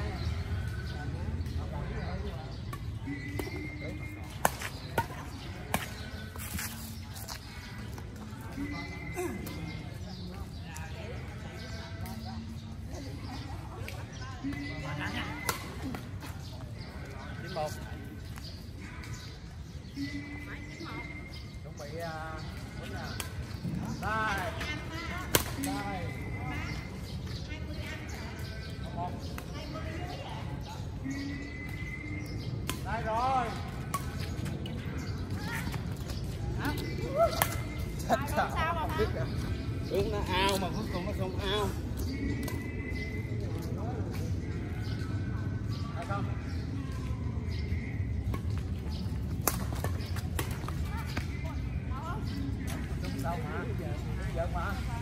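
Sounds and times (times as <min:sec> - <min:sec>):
rackets striking shuttlecock: 0:25.2 - 0:25.8, 0:35.7 - 0:37.9, 0:48.3 - 0:51.4.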